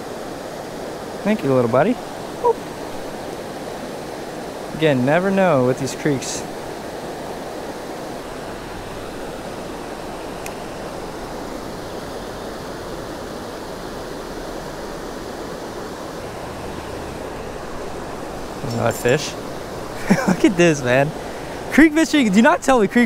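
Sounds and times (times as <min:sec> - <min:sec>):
creek water rushing over rocks: 0:00.0 - 0:23.0.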